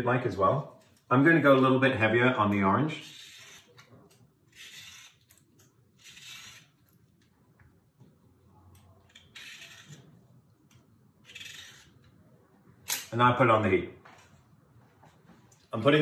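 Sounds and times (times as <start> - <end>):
vegetable peeler scraping fruit: 3.0 - 3.9, 4.5 - 5.4, 6.0 - 6.8, 9.1 - 10.1.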